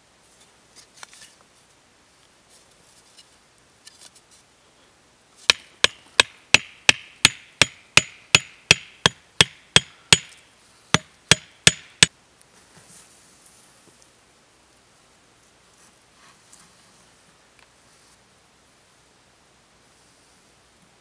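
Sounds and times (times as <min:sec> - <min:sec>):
hammering wooden stake: 0:05.5 - 0:10.4, 0:11.0 - 0:12.1.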